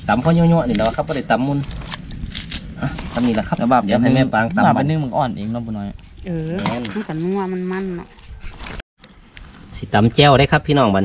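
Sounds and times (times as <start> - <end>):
voice: 0.0 - 1.7, 2.8 - 8.1, 9.8 - 11.0.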